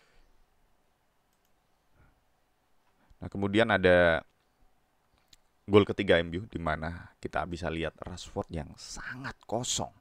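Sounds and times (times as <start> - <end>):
very soft clicks: 1.2 - 1.7.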